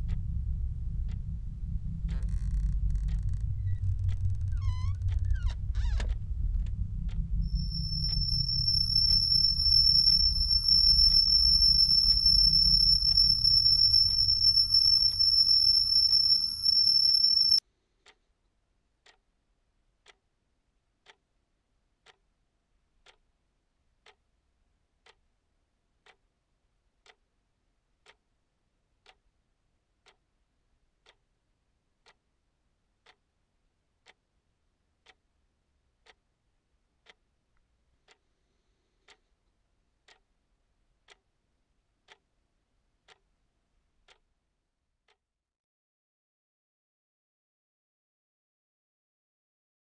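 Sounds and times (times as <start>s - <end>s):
loud low rumble: 0.0s - 16.5s
steady high-pitched whine: 0.0s - 17.6s
clock ticking: 0.0s - 18.2s, 19.0s - 19.2s, 20.0s - 20.3s, 21.0s - 21.2s, 22.0s - 22.2s, 23.0s - 23.3s, 24.0s - 24.3s, 25.0s - 25.3s, 26.0s - 26.3s, 27.0s - 27.3s, 28.0s - 28.2s, 29.0s - 29.3s, 30.0s - 30.2s, 31.0s - 31.3s, 32.0s - 32.2s, 33.0s - 33.3s, 34.0s - 34.3s, 35.0s - 35.3s, 36.0s - 36.2s, 37.0s - 37.2s, 38.0s - 38.2s, 39.0s - 39.2s, 40.0s - 40.3s, 41.0s - 41.3s, 42.1s - 42.3s, 43.0s - 43.3s, 44.1s - 44.3s.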